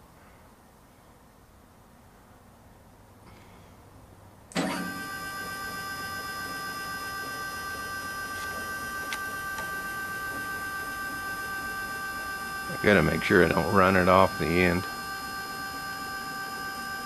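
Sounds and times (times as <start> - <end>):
stepper motor whining: 4.5 - 17.0.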